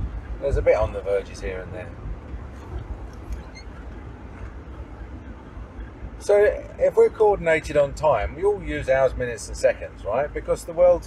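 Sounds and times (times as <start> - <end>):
car engine rumble: 0.0 - 11.0
tyres on wet road: 0.0 - 11.0.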